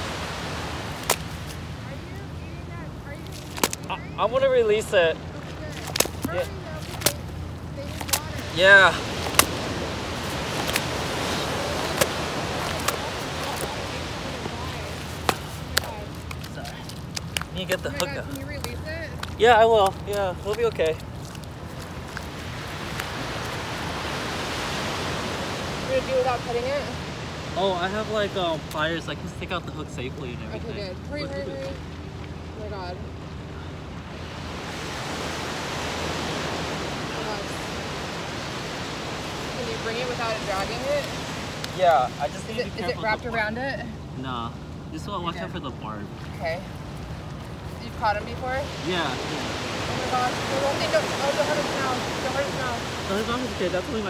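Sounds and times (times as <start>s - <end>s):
surf on sandy beach: 0.0s - 54.0s
wind: 0.0s - 54.0s.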